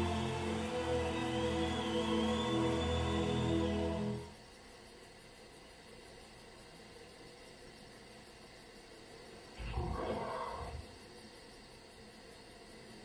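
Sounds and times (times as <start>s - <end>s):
faint hiss: 3.9s - 13.0s
low roar-like growl: 9.6s - 10.9s.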